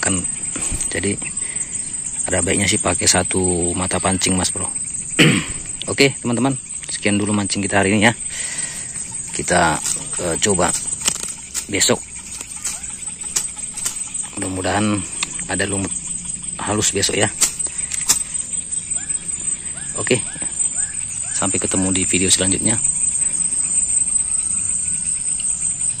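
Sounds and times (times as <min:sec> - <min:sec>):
high insect buzz: 0:00.0 - 0:26.0
mesh net taps and rustles: 0:09.8 - 0:14.3, 0:17.4 - 0:18.3.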